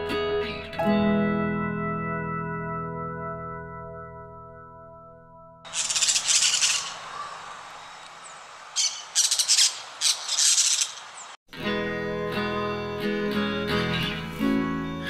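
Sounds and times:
parakeets screeching: 5.7s - 11.4s.

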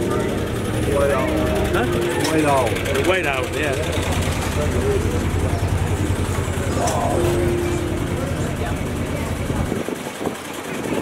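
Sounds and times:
low rumble: 0.0s - 10.0s
outdoor crowd chatter: 0.0s - 11.0s.

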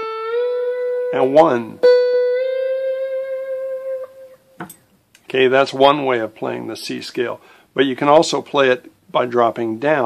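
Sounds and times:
lap steel guitar note: 0.0s - 4.7s.

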